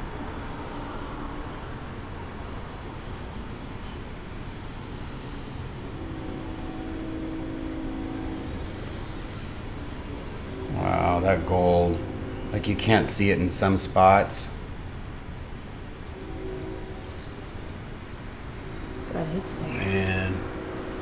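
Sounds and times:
faint steady hum: 0:00.0 - 0:21.0
low rumbling fan noise: 0:00.0 - 0:21.0.

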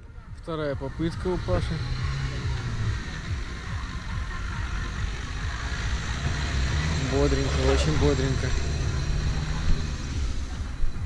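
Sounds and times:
diesel engine under load: 0:00.2 - 0:11.0.

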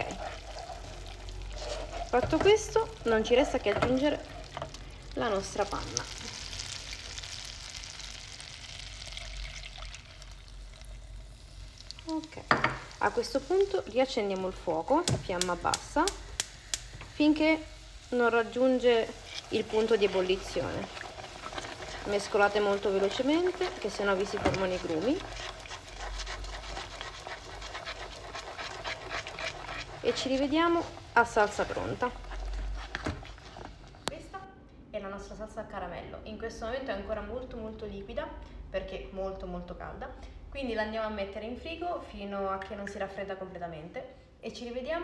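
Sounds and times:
wooden spoon scraping a pan: 0:00.0 - 0:06.0, 0:17.6 - 0:34.1
caramel sizzling and crackling: 0:00.0 - 0:34.2
cream being poured: 0:08.8 - 0:11.0.

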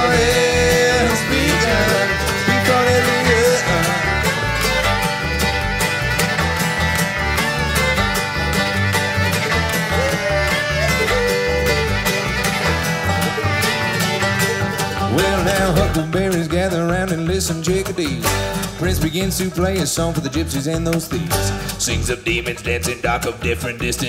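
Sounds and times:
acoustic guitar: 0:00.0 - 0:24.0
banjo rolls: 0:00.0 - 0:24.0
fiddle melody: 0:00.0 - 0:24.0
mandolin: 0:00.0 - 0:24.0
upright bass: 0:00.0 - 0:24.0.

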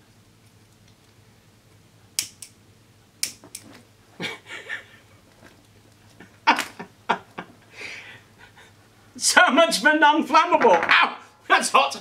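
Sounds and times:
lighter clicking: 0:02.2 - 0:02.6, 0:03.2 - 0:03.6
man laughing: 0:04.2 - 0:05.2, 0:06.1 - 0:07.7.

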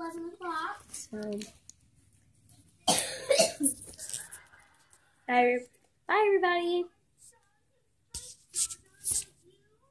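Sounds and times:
girl coughing: 0:02.8 - 0:03.8.

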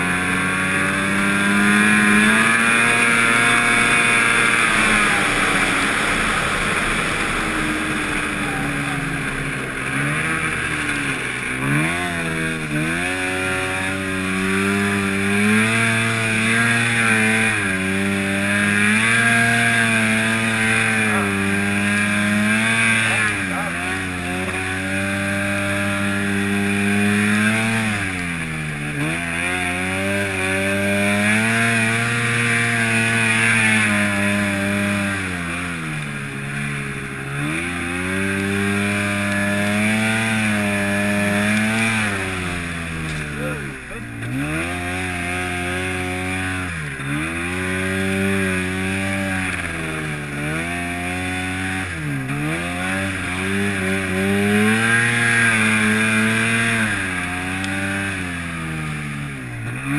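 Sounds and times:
snowmobile engine running hard: 0:00.0 - 0:59.9.

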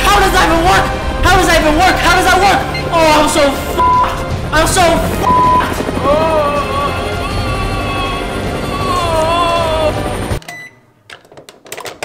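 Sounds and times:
music: 0:00.0 - 0:10.4.

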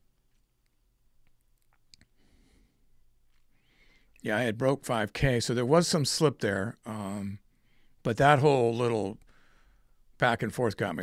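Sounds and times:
faint clicks: 0:00.2 - 0:02.2.

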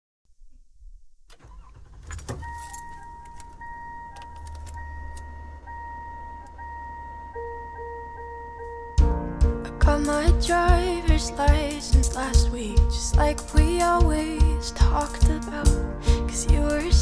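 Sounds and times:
clicks: 0:01.3 - 0:06.6
low engine rumble: 0:01.4 - 0:17.0
car warning chime: 0:01.7 - 0:09.1
keys jangling: 0:02.0 - 0:05.4.

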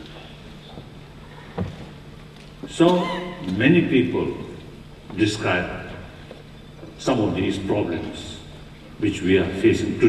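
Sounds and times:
steady low hum and hiss: 0:00.0 - 0:10.0.

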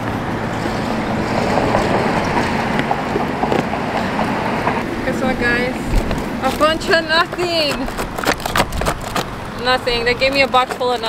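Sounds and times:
wind on microphone: 0:00.0 - 0:10.7
traffic: 0:00.0 - 0:11.0
cardboard box crackling: 0:05.9 - 0:11.0.

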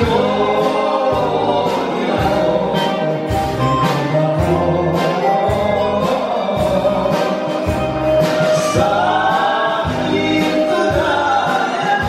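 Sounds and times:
bouzouki: 0:00.0 - 0:12.0
live band music: 0:00.0 - 0:12.0
person singing: 0:00.0 - 0:12.0.

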